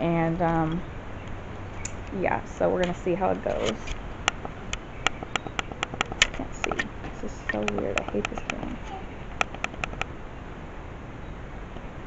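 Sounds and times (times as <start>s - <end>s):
sharp clicks: 3.8s - 10.1s.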